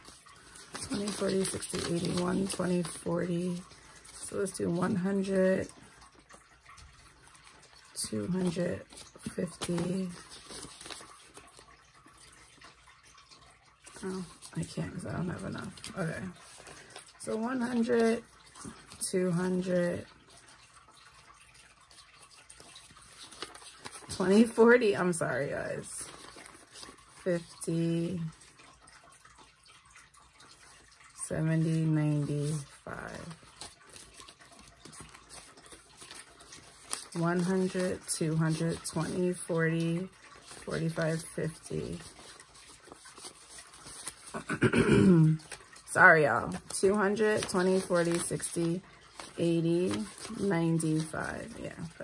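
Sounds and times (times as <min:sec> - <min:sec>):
banknotes being counted: 0:00.0 - 0:05.7, 0:45.3 - 0:51.9
banknotes rustling being counted: 0:00.0 - 0:44.5, 0:45.3 - 0:52.0.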